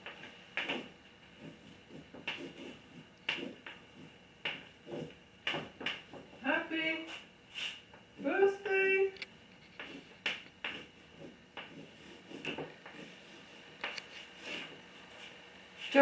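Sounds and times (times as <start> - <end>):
chalk scratching on blackboard: 0.0 - 7.9, 9.6 - 16.0.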